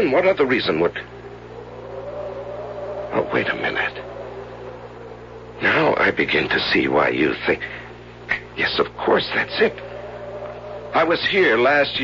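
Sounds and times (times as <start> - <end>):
faint rising tone: 0.0 - 7.2, 8.7 - 12.0
low hum: 0.0 - 12.0.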